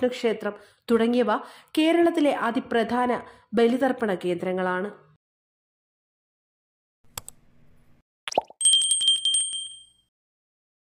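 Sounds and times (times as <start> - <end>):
notification bell trilling: 8.3 - 10.1.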